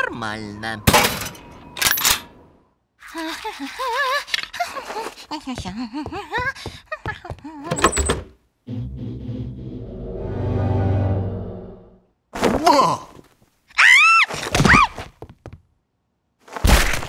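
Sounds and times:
background music: 8.7 - 12.0.

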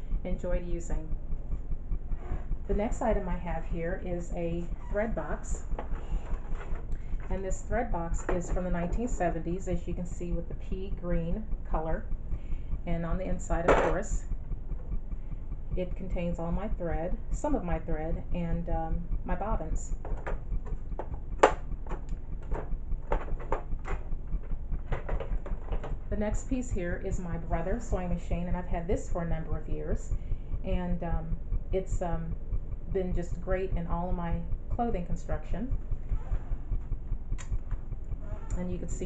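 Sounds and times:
low steady hum: 0.0 - 39.0
steady low rumble: 0.0 - 39.0.

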